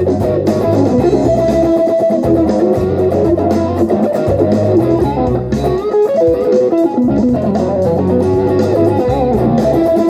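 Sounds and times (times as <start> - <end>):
electric guitar blues lead: 0.0 - 10.0.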